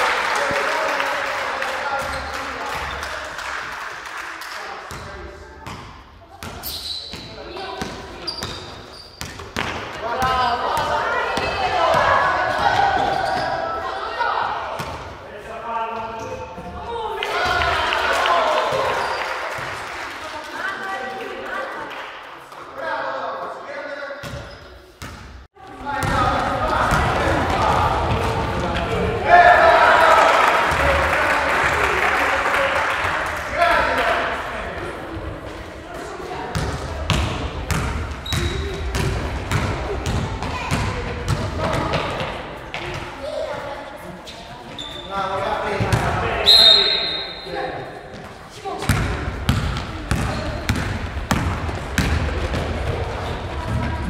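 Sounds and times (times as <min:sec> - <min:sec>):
chatter and shouts: 0:09.9 - 0:16.0, 0:16.7 - 0:24.2, 0:25.6 - 0:54.0
basketball bouncing on gym floor: 0:26.0 - 0:26.2, 0:36.5 - 0:43.0, 0:48.8 - 0:54.0.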